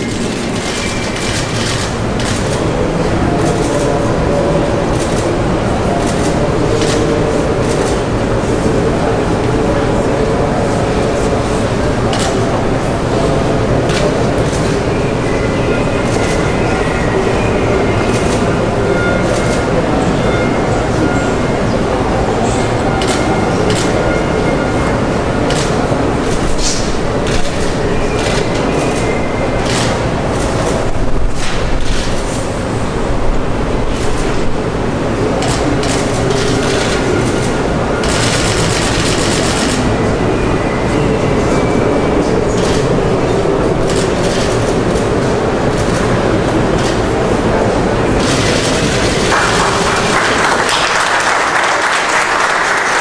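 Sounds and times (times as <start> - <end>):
people talking quietly: 0.0 - 53.0.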